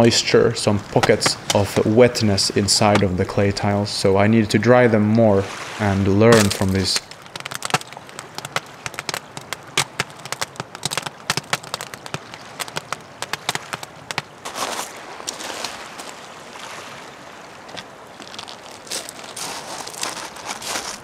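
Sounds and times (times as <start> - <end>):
wood fire crackling: 6.3 - 15.4, 17.8 - 21.0.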